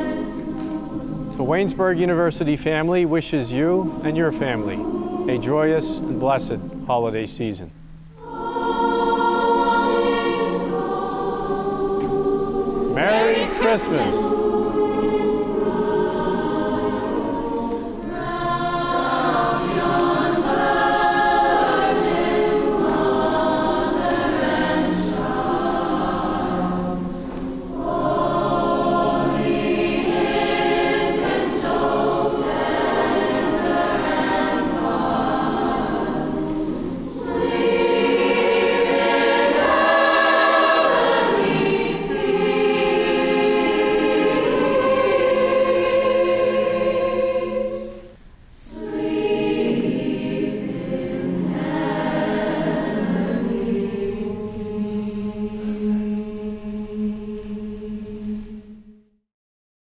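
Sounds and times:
mixed choir singing: 0:00.0 - 0:59.2.

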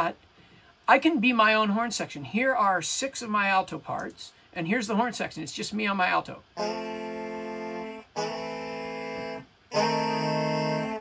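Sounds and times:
alto saxophones holding chords: 0:06.6 - 0:11.0.

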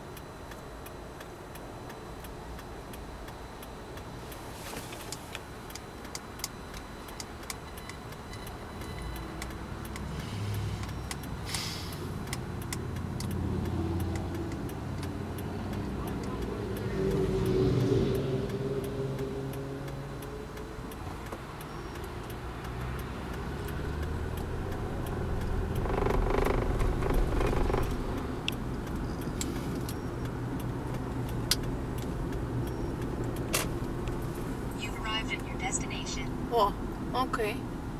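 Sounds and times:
road noise: 0:00.0 - 0:37.9
steady ticking: 0:00.0 - 0:37.9
car engine accelerating: 0:07.9 - 0:36.2.

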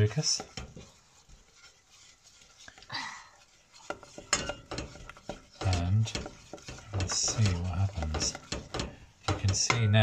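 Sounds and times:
spoon scraping saucepan: 0:00.0 - 0:10.0
wooden spoon stirring syrup: 0:00.0 - 0:10.0.

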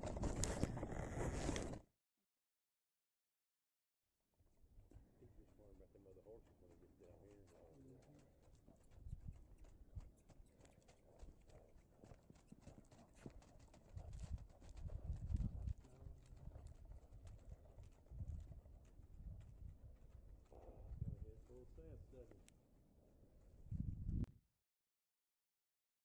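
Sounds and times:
hoofbeats in snow: 0:00.0 - 0:01.8, 0:04.9 - 0:22.4.

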